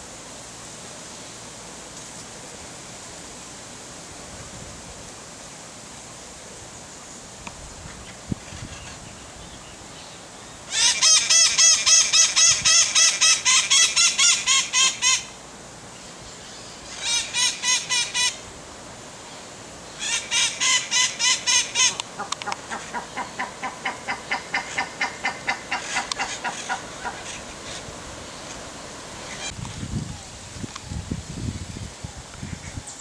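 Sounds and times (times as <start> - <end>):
bird calling in repeated notes: 10.7 - 15.4, 16.6 - 18.4, 19.9 - 27.4.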